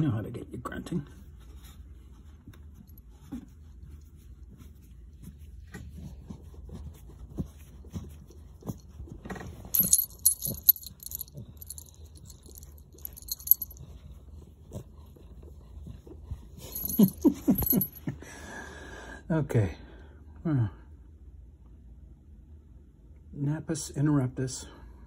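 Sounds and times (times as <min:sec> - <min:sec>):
collar bell jingling: 0:09.8 - 0:13.9, 0:16.6 - 0:18.1.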